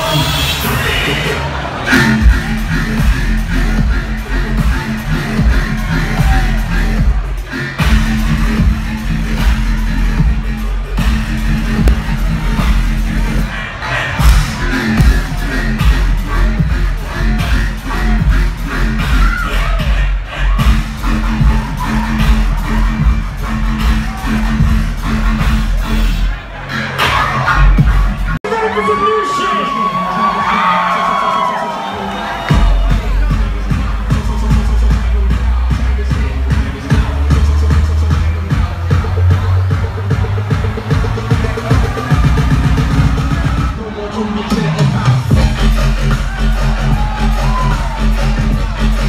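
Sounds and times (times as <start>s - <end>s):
dubstep through club sound system: 0.0s - 28.4s, 32.5s - 49.0s.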